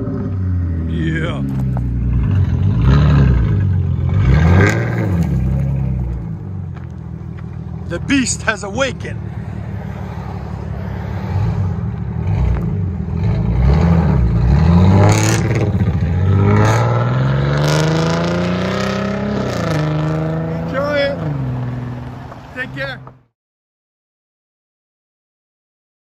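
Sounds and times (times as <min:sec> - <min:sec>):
car engine idling and revving: 0:00.0 - 0:23.3.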